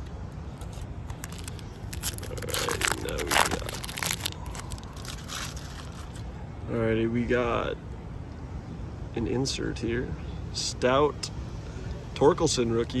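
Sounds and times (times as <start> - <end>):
foil wrapper tearing and crinkling: 0.6 - 6.2.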